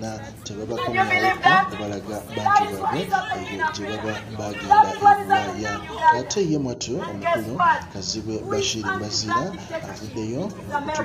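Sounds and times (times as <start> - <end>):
voices chattering: 0.0 - 11.0
woman calling through a megaphone: 0.7 - 6.4, 7.0 - 7.9, 8.5 - 11.0.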